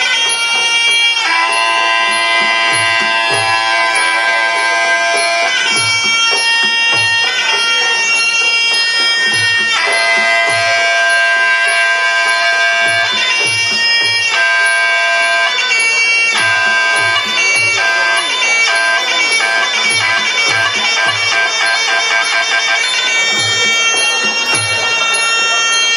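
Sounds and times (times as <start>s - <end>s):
reedy oboe melody: 0.0s - 25.9s
hand drum beats: 1.8s - 11.0s, 16.4s - 22.1s, 23.2s - 25.9s.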